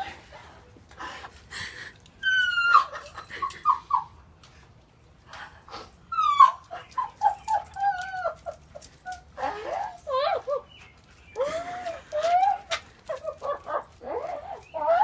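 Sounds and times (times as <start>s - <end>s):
dog whining: 6.1s - 15.0s.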